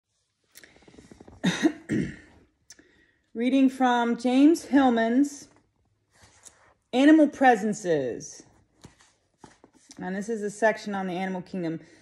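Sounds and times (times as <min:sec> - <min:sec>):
woman coughing: 0:01.4 - 0:02.4.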